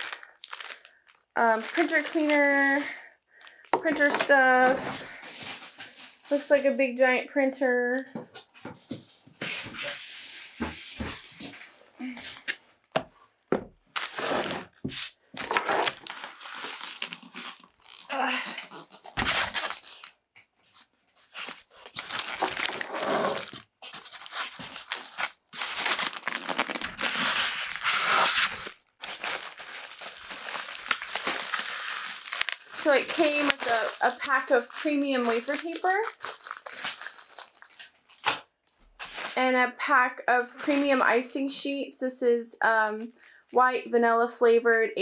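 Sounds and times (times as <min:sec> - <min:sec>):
plastic wrap crinkling: 0:00.0 - 0:05.8, 0:13.9 - 0:39.4.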